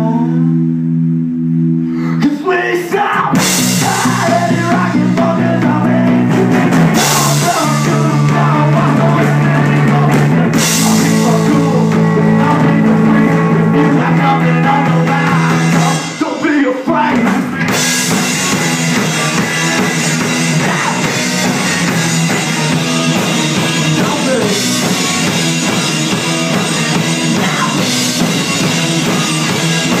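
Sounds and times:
person singing: 0.0s - 0.7s, 1.9s - 17.8s, 18.4s - 30.0s
rock band playing: 0.0s - 30.0s.

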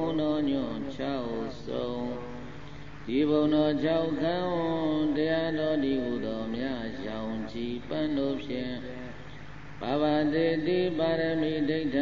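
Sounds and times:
person chanting: 0.0s - 9.2s, 9.8s - 12.0s.

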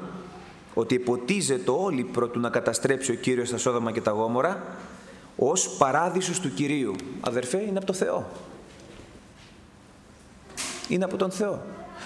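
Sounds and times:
man speaking: 0.0s - 8.5s, 10.9s - 11.8s.

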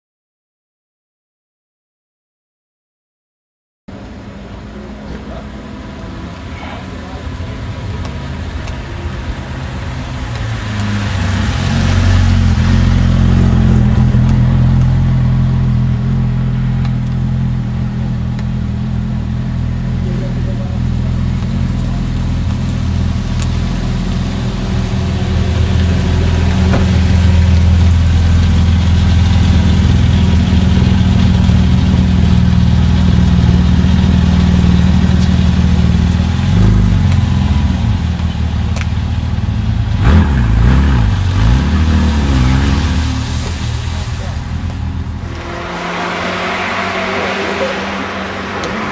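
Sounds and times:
car engines at low revs: 3.9s - 48.9s.

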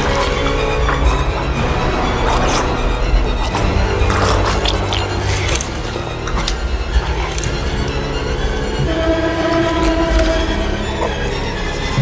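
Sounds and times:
held horn-like tone: 8.7s - 11.7s.

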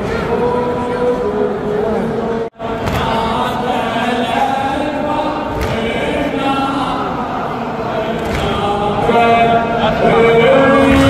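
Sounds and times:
men chanting together: 2.5s - 11.0s.

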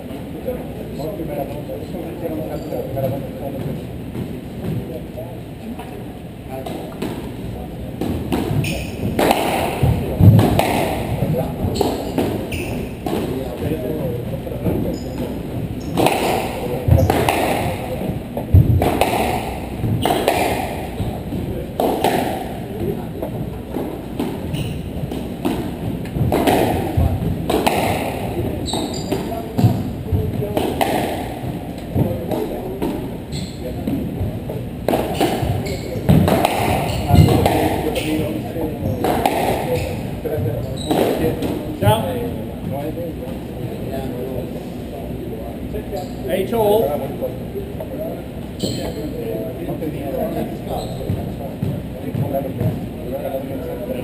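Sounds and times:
background murmur in large hall: 0.0s - 54.0s
squash ball knocks: 8.0s - 33.1s, 33.8s - 43.4s.

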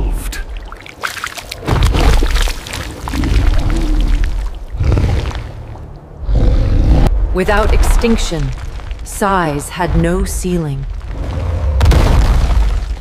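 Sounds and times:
creature roars and growls: 6.2s - 7.1s.

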